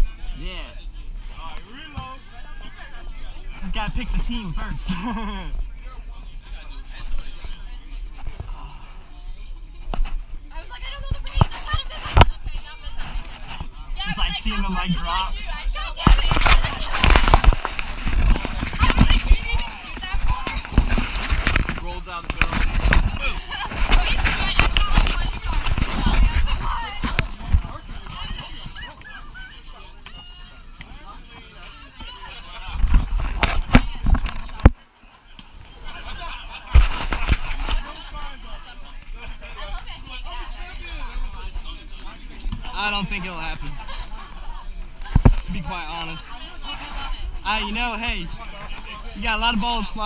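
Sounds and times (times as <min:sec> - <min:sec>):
crowd chatter: 0:00.0 - 0:50.0.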